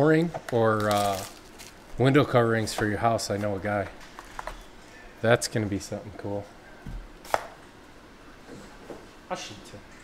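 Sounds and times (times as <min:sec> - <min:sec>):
faint foil rustling: 0:00.7 - 0:02.1.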